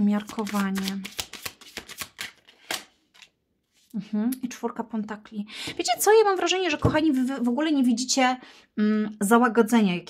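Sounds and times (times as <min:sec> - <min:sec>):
card snap: 0:00.2 - 0:03.3
cards clicking and sliding: 0:00.2 - 0:03.3.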